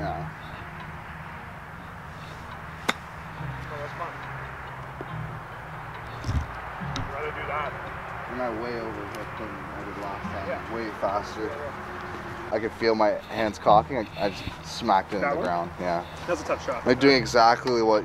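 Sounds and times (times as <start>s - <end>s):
golf ball struck by club: 2.8s - 3.7s
faint voices: 6.2s - 18.0s.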